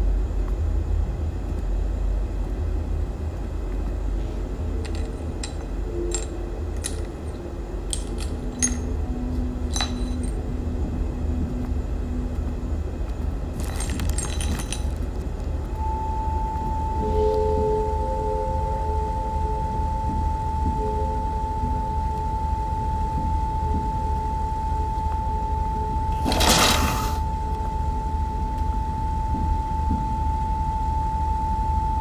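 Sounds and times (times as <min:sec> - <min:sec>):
electrical hum: 0:00.0 - 0:32.0
clicks and clinks: 0:04.8 - 0:09.0, 0:09.7 - 0:10.4, 0:13.6 - 0:15.0
fainter lower tones: 0:15.6 - 0:32.0.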